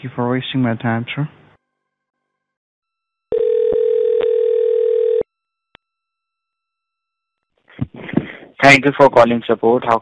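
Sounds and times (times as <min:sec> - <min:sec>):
telephone ringback tone: 0:03.3 - 0:05.3.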